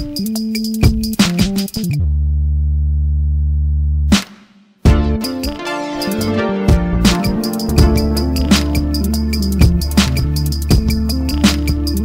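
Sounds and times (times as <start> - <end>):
deep synthesized bass note: 2.0 - 4.1, 4.9 - 5.4, 6.0 - 11.4.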